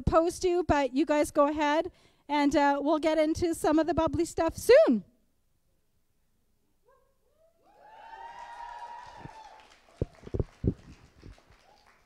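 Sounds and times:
audience whooping: 7.6s - 12.0s.

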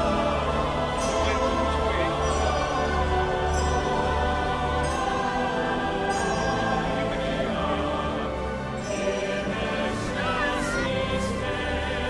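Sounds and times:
choir singing held notes: 0.0s - 12.0s.

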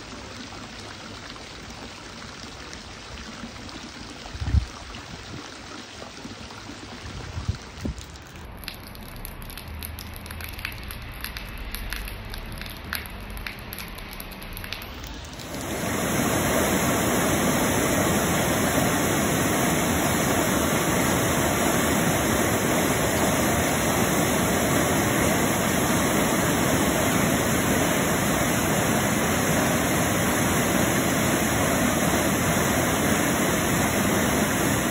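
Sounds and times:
water rushing over a weir: 9.1s - 34.9s.

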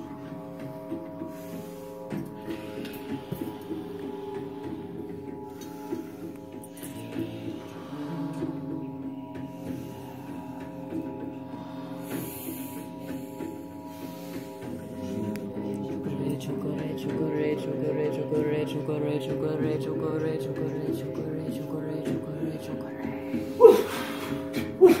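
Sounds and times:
low hum: 0.0s - 25.0s
quiet music with held tones: 0.0s - 25.0s.

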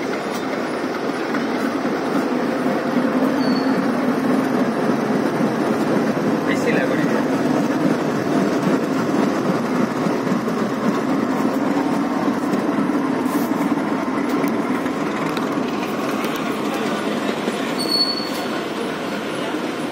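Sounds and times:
diesel locomotive passing: 0.0s - 19.9s
freight train wheels rumbling: 0.0s - 19.9s
brief high squeal: 3.3s - 3.8s, 17.8s - 18.6s.

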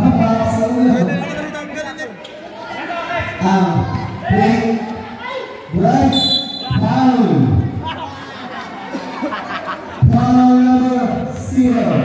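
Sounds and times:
referee's whistle: 6.1s - 6.8s.

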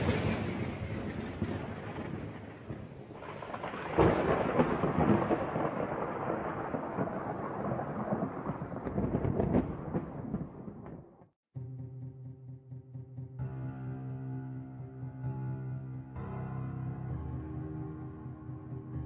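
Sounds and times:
rain: 0.0s - 11.2s
rolling thunder: 0.0s - 11.3s.

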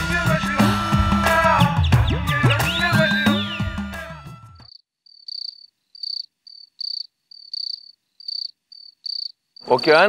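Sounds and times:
cricket chirping: 4.6s - 10.0s.

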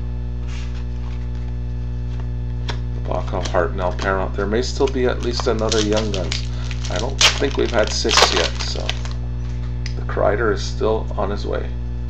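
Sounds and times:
electrical mains hum: 0.0s - 12.0s
trading cards rustling: 3.2s - 9.2s.

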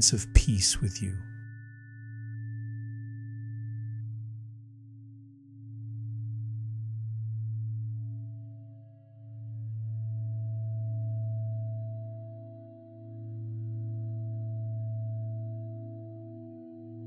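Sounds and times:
low synthesized sine tone: 1.2s - 16.0s.

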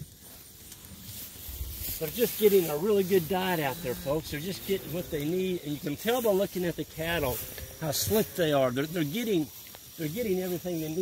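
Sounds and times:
rustling of grass and clothing: 0.0s - 11.0s.

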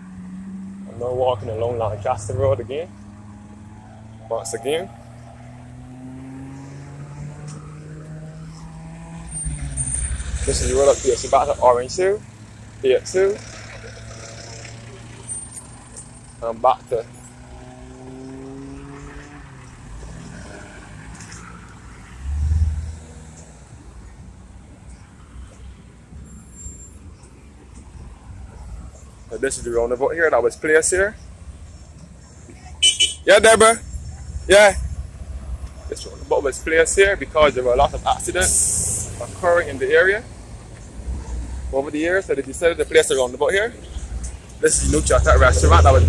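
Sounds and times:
approaching vehicle rumble: 0.0s - 46.0s
car engine hum: 0.0s - 46.0s.

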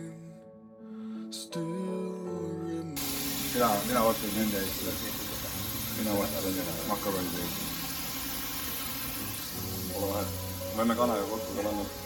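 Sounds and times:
gas hob hum and hiss: 3.0s - 12.0s
water boiling: 3.0s - 12.0s.

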